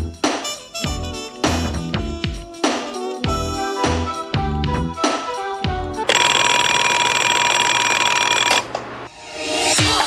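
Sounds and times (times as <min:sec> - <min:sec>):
music: 0:00.0 - 0:06.2, 0:09.0 - 0:10.0
alarm clock ringing: 0:06.1 - 0:08.6.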